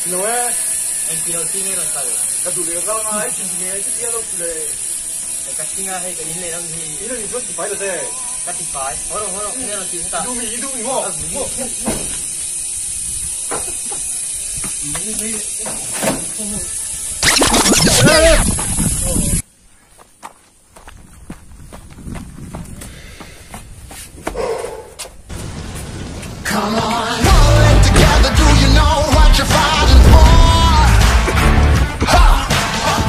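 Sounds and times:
steady high hiss: 0.0 - 19.6
footsteps running up concrete stairs: 20.0 - 25.3.

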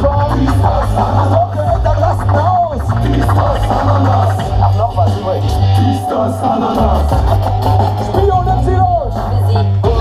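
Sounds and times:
deep stepping bass line: 0.0 - 5.9
loud hip hop music: 0.0 - 10.0
person rapping: 0.0 - 10.0.

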